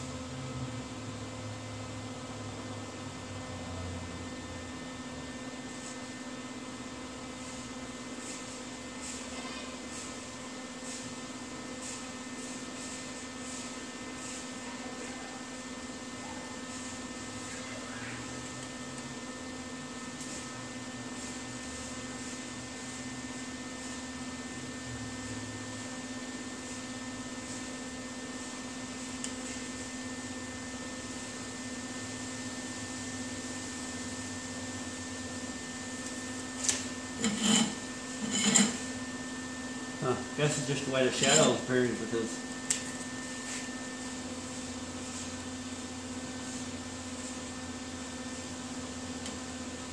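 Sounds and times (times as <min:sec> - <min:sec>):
electric machine hum: 0:00.0 - 0:49.9.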